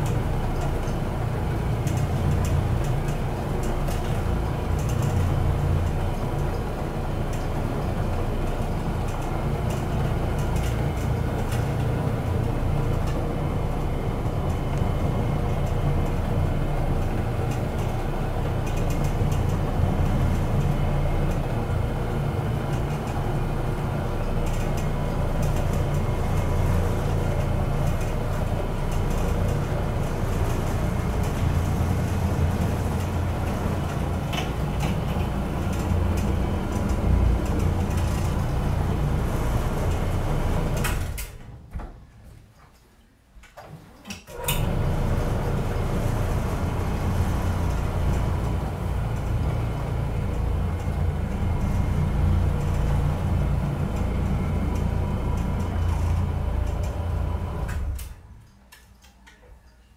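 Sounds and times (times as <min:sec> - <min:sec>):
floor machine motor humming: 0:44.6 - 0:58.1.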